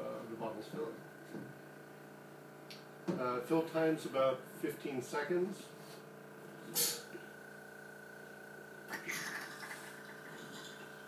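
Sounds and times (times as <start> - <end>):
vacuum pump humming: 0.0 - 11.0.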